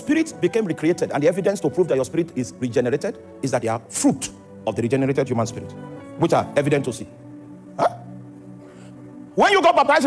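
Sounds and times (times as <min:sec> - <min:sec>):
soft background music: 0:00.0 - 0:10.0
hiccup-like vocal sound: 0:07.8 - 0:08.1.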